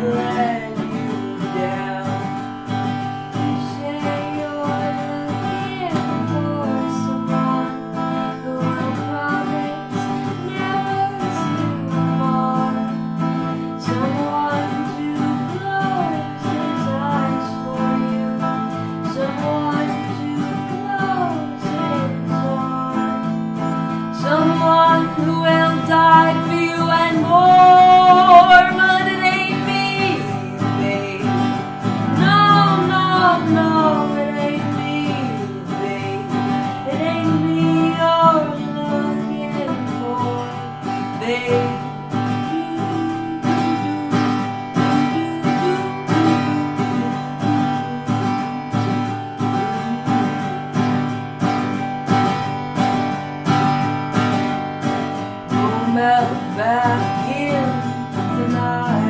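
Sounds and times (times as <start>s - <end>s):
acoustic guitar strumming: 0.0s - 59.0s
woman singing: 0.0s - 59.0s.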